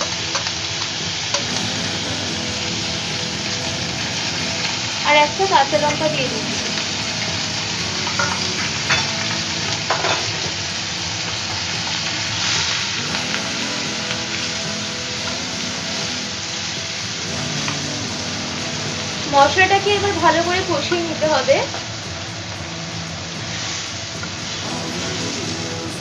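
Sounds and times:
food sizzling in oil: 0:00.0 - 0:26.0.

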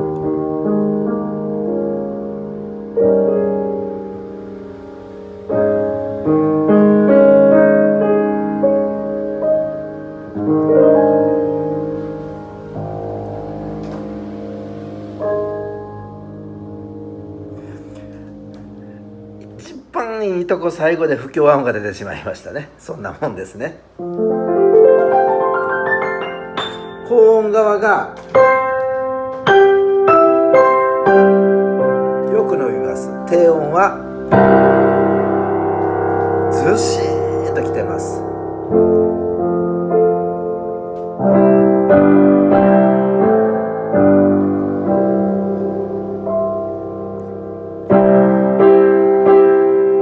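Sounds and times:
piano chords ringing: 0:00.0 - 0:50.0.

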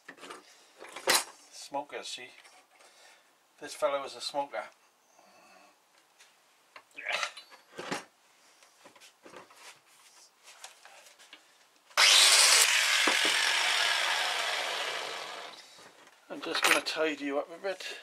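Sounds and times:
power drill grinding steel: 0:12.0 - 0:15.8.

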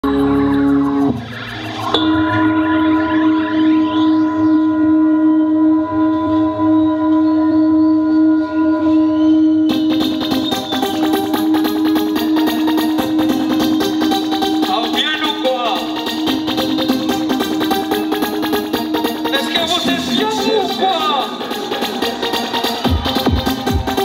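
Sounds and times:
fast electronic beat: 0:00.0 - 0:03.6, 0:09.7 - 0:24.0
held drone note: 0:00.0 - 0:14.7
rising swept sounds: 0:00.1 - 0:14.6.

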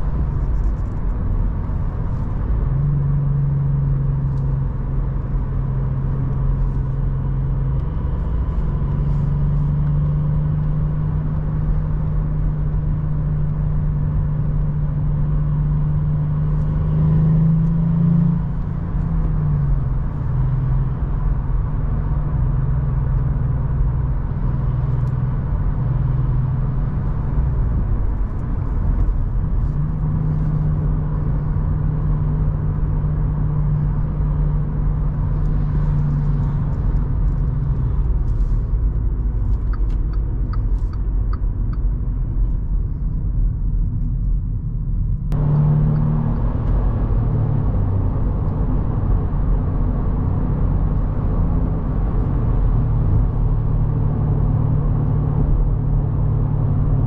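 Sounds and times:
car engine humming: 0:00.0 - 0:57.0
tyre and road noise: 0:00.0 - 0:57.0.

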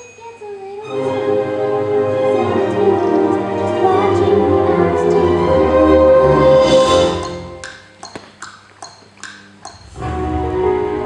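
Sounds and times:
ringing pings alternating pitch: 0:00.0 - 0:00.5
sustained song notes: 0:00.9 - 0:08.0, 0:09.8 - 0:11.0.

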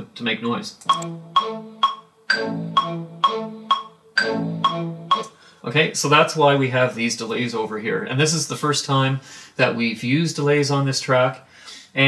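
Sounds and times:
metronome ticking: 0:00.8 - 0:05.4
sustained synth chord: 0:01.0 - 0:05.3.

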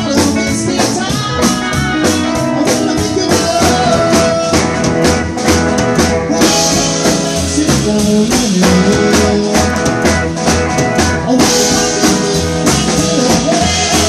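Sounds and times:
live rockabilly band playing: 0:00.0 - 0:14.0.

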